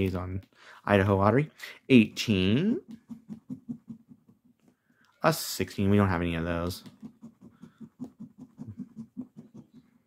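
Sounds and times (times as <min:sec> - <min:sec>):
coin scratching lottery ticket: 0:06.8 - 0:10.0.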